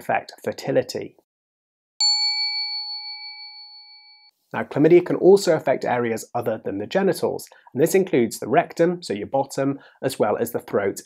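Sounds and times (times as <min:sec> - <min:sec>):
bell-like chime ringing: 0:02.0 - 0:04.3.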